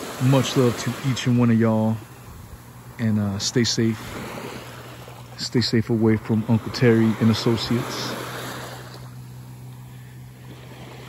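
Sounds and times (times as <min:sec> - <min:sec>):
small waves washing on sand: 0:00.0 - 0:11.0
steady low hum: 0:00.0 - 0:11.0.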